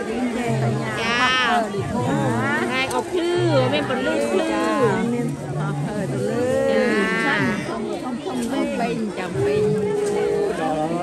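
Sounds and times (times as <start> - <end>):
people talking over one another: 0.0 - 11.0.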